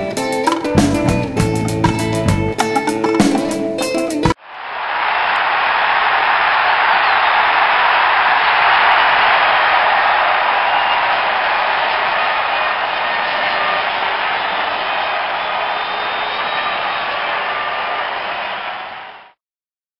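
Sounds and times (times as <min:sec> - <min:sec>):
audience applauding: 0:04.5 - 0:19.4.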